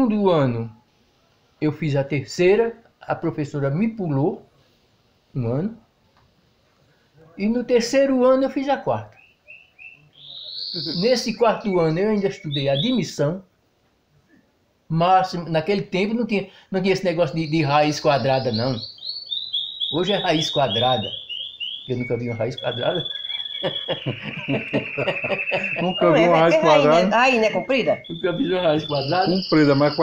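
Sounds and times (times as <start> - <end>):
bird chirping: 9.0 - 13.2, 16.8 - 30.0
rising whistled bird note: 9.2 - 13.0, 17.4 - 30.0
high-pitched tone: 21.9 - 30.0
laughter in rapid pulses: 23.1 - 26.0.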